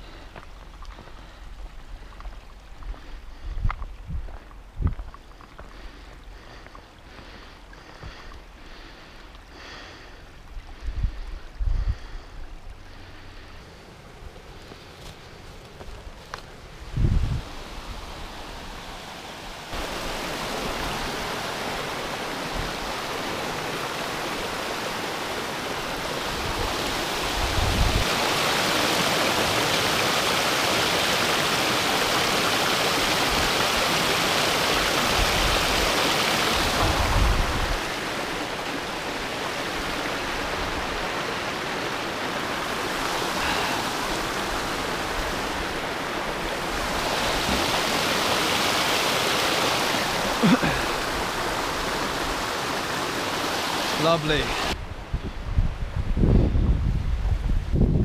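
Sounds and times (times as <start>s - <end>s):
stream rushing over boulders: 0.0s - 58.0s.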